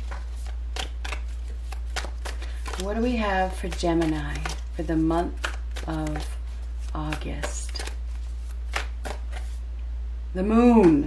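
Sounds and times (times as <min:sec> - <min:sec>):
cards being shuffled: 0:00.0 - 0:09.7
steady low hum: 0:00.0 - 0:11.0.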